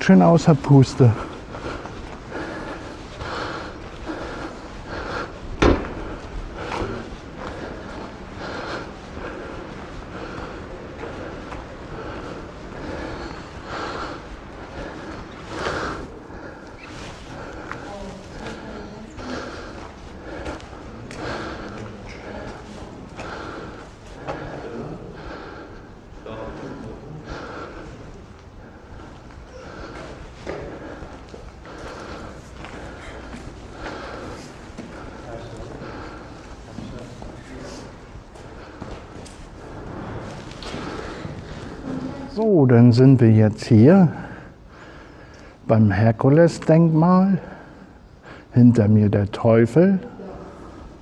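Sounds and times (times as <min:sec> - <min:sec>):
man breathing hard: 0:00.0 - 0:42.3, 0:43.9 - 0:45.7, 0:47.4 - 0:48.5, 0:50.0 - 0:51.0.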